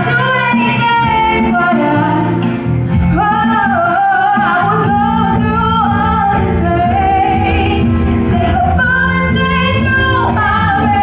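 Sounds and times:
live band playing: 0.0s - 11.0s
woman singing into a microphone: 0.0s - 11.0s.

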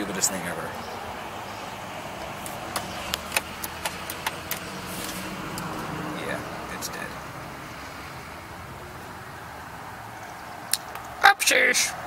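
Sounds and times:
sharp clicks: 2.2s - 4.7s.

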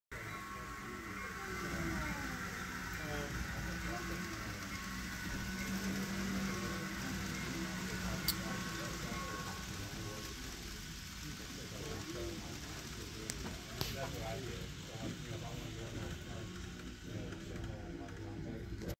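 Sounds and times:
model train running: 0.1s - 18.9s
indistinct background voices: 0.2s - 18.9s.

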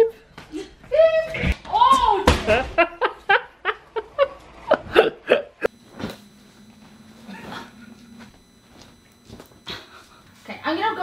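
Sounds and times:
woman laughing: 2.5s - 5.7s
faint low hum: 5.7s - 11.0s.

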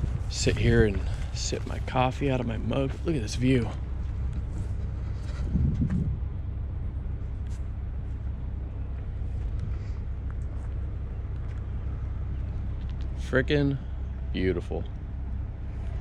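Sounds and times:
engine running: 0.0s - 16.0s.

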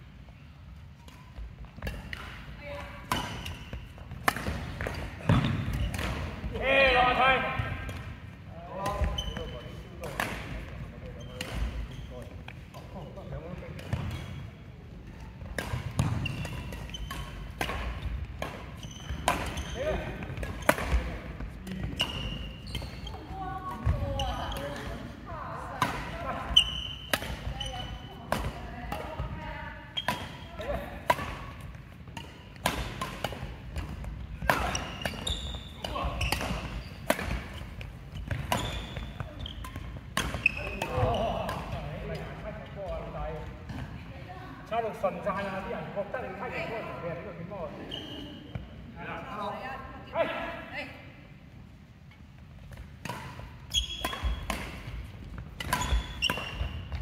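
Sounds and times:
rackets striking shuttlecock: 3.0s - 6.4s, 15.4s - 19.6s, 25.8s - 27.5s, 30.0s - 42.3s, 52.7s - 57.0s
shoes squeaking on wooden floor: 9.0s - 9.8s, 11.0s - 13.4s, 15.9s - 24.8s, 34.1s - 41.5s, 53.7s - 54.5s, 55.3s - 57.0s.

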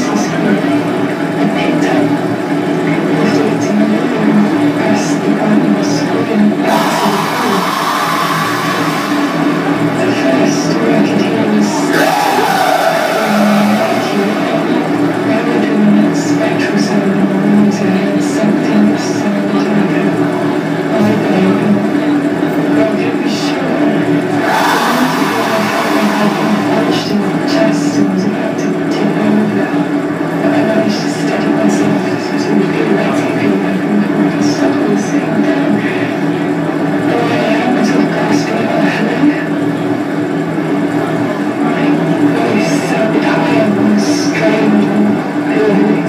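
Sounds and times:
wall of electronic noise: 0.0s - 29.9s
harsh electronic noise music: 6.6s - 10.9s, 11.9s - 16.2s, 24.4s - 28.0s
distorted yelling into microphone: 6.6s - 16.4s, 24.3s - 28.2s
low droning tones: 6.6s - 17.2s, 24.3s - 28.8s.

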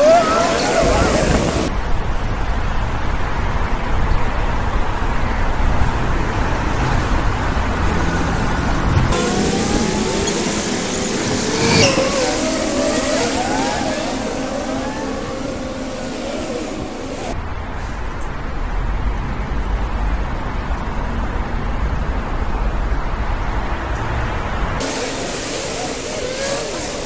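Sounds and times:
short rising and falling tones: 0.0s - 1.7s, 9.1s - 17.4s
road traffic noise: 0.0s - 1.8s, 3.4s - 17.9s, 23.6s - 27.0s.

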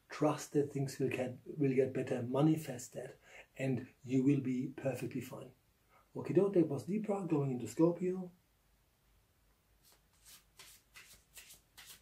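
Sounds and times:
cards being shuffled: 9.8s - 12.0s.

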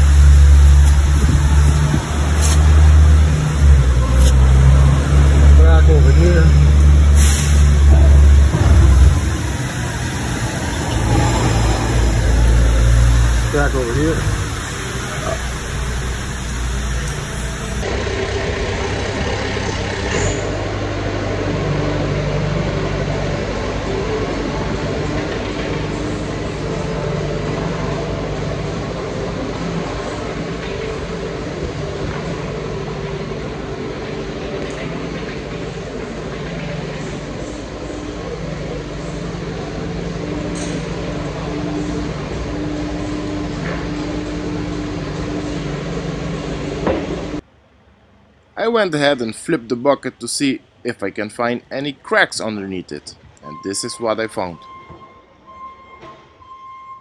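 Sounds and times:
diesel engine running under load: 0.0s - 47.5s.

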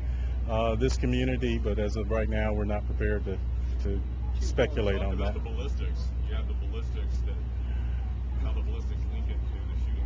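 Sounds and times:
distant voices murmuring: 0.0s - 10.0s
steady low rumble: 0.0s - 10.0s.

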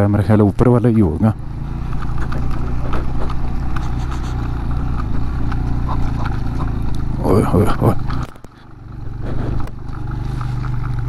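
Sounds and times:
small motorcycle engine running: 0.0s - 11.0s
clicks and rattles on gravel: 1.8s - 11.0s.

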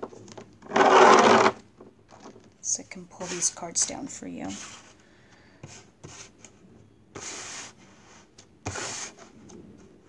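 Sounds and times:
cards sliding across a tabletop: 4.5s - 6.5s, 7.2s - 9.4s.

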